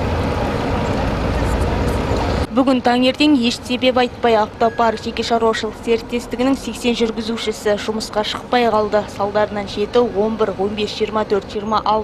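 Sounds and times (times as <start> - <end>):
bus cabin low rumble: 0.0 - 12.0.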